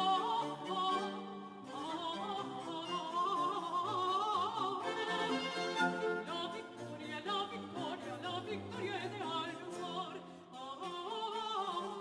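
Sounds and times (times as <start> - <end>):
woman singing operatically: 0.0 - 12.0.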